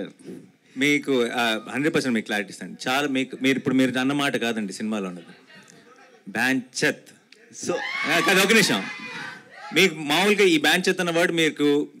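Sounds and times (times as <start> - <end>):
man talking animatedly: 6.2 - 9.0.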